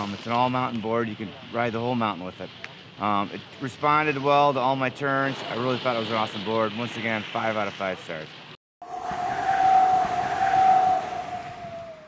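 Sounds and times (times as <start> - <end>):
rushing whoosh: 8.8 - 12.0.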